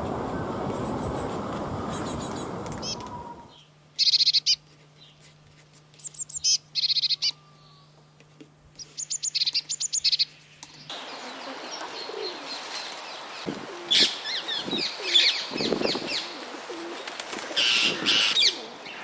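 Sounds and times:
small bird chirping: 0.8 - 5.2, 6.0 - 7.9, 8.8 - 12.7.

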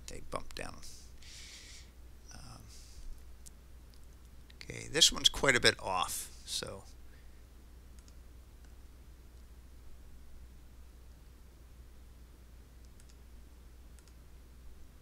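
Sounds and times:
faint hiss: 0.0 - 15.0
steady low hum: 0.0 - 15.0
computer mouse clicks: 7.9 - 8.8, 12.8 - 13.2, 13.9 - 14.2.

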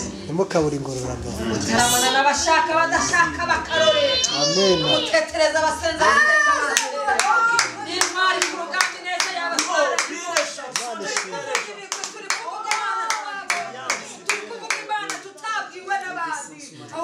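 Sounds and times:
people's voices: 0.0 - 17.0
hands clapping a steady beat: 6.7 - 15.5.

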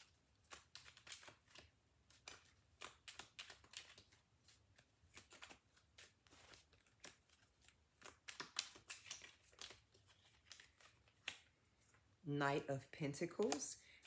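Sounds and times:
cards being shuffled: 0.0 - 12.2, 13.4 - 14.0.

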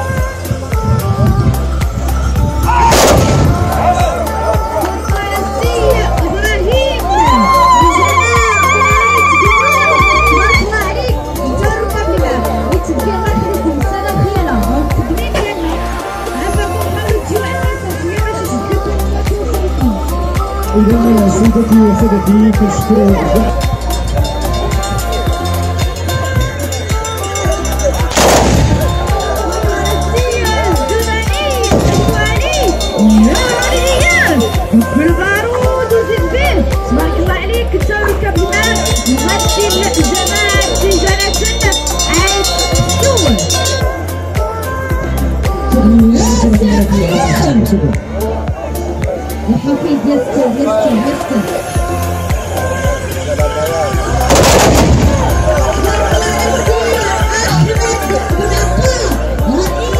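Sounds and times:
background music: 0.0 - 59.9
musket volley blast: 2.8 - 4.0, 28.1 - 29.2, 54.3 - 55.7.

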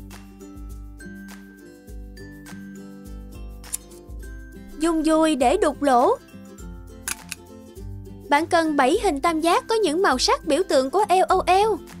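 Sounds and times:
light background music: 0.0 - 12.0
hole punch clicking: 7.1 - 7.4.

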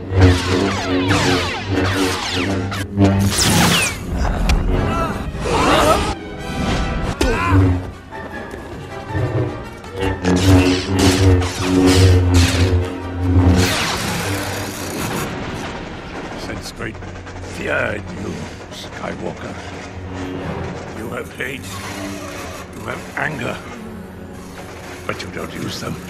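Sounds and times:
lightsaber clashes and swings: 0.0 - 4.2
lightsaber humming: 0.0 - 6.2, 7.1 - 26.0
film score music: 0.0 - 26.0.

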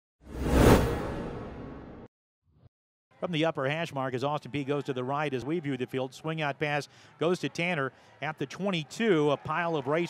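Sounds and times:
whoosh with deep low hit: 0.2 - 2.1.

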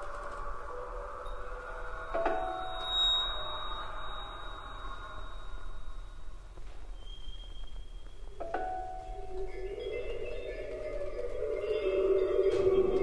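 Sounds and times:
sparse chamber music: 0.0 - 7.0.

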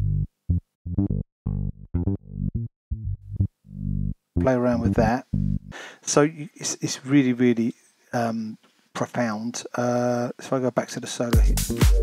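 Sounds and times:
synth bass sequence: 0.0 - 5.7.

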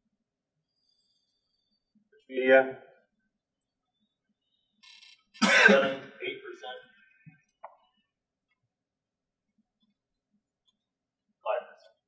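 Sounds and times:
man coughing: 5.4 - 6.1.

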